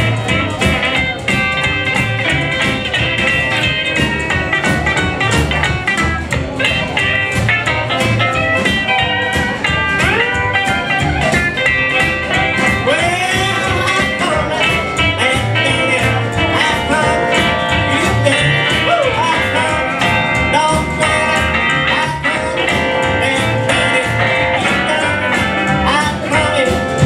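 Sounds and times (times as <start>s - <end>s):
acoustic and electric guitar: 0.0s - 27.0s
drums: 0.0s - 27.0s
steel guitar sliding notes: 0.0s - 27.0s
upright bass: 0.0s - 27.0s.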